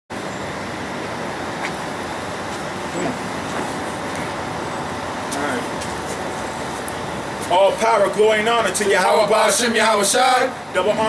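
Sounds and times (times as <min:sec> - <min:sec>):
outdoor hiss and rumble: 0:00.1 - 0:11.0.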